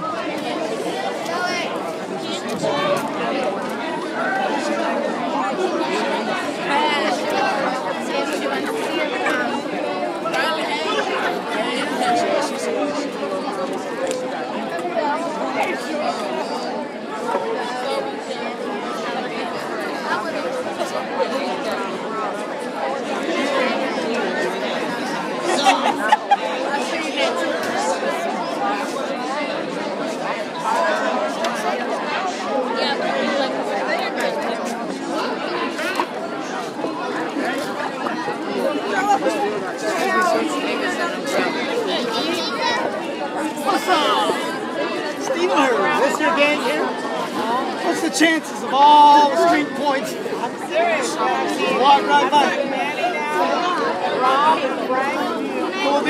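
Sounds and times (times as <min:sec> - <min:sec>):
large crowd chattering: 0:00.0 - 0:56.0.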